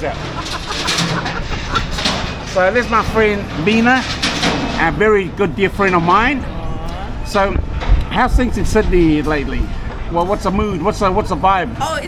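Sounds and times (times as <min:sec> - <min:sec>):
passing traffic: 0:00.0 - 0:03.6, 0:04.8 - 0:12.0
voices chattering: 0:00.0 - 0:04.0, 0:04.8 - 0:12.0.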